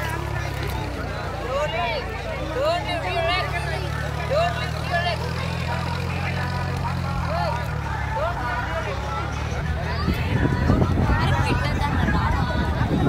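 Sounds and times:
children calling and chattering: 0.0 - 13.0
low engine hum: 0.0 - 13.0.

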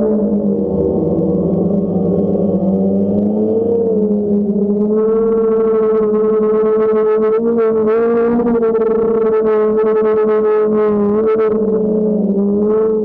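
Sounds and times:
drone propellers humming: 0.0 - 13.0.

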